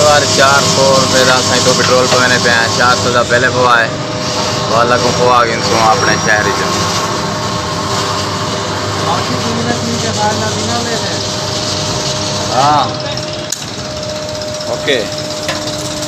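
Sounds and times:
men talking: 0:00.0 - 0:07.0, 0:08.9 - 0:11.4, 0:12.4 - 0:13.5, 0:14.6 - 0:15.2
fuel pump humming and whining: 0:00.0 - 0:16.0.

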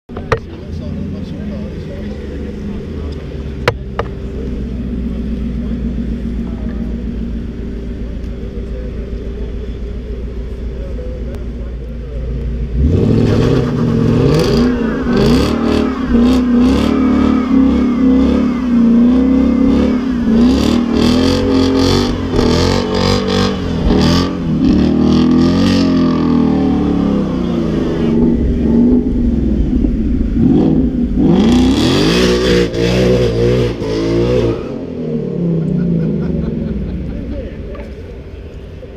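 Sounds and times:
car engine revving: 0:00.1 - 0:38.9.

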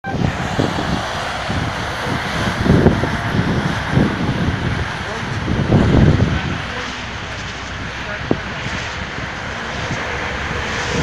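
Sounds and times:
highway traffic rumble: 0:00.0 - 0:11.0.

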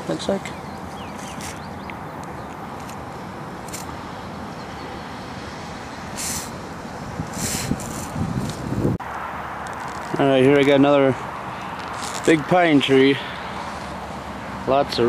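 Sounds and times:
highway traffic hum: 0:00.0 - 0:15.0
rustles: 0:00.8 - 0:04.0, 0:07.2 - 0:08.9, 0:09.6 - 0:14.2
wind noise on microphone: 0:06.2 - 0:09.0.

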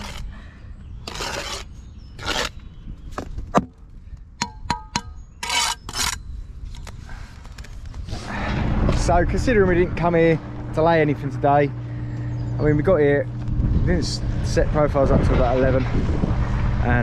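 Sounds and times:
trowel scraping mortar off bricks: 0:00.0 - 0:00.3, 0:01.0 - 0:02.6, 0:05.4 - 0:06.2.

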